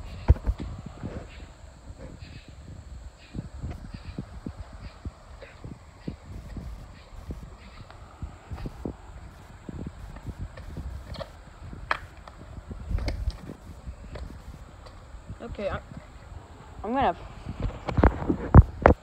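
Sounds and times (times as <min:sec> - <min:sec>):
footsteps on hard ground: 0:00.0 - 0:02.2, 0:03.6 - 0:16.2.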